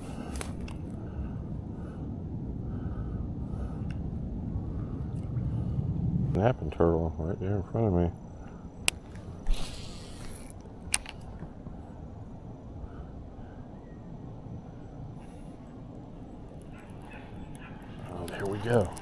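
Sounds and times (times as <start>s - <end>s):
low outdoor background: 0.0s - 19.0s.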